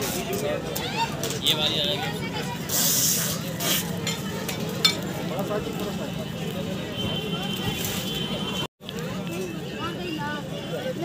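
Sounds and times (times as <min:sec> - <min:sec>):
chatter of voices: 0:00.0 - 0:11.0
sharp hissing burst: 0:02.7 - 0:03.9.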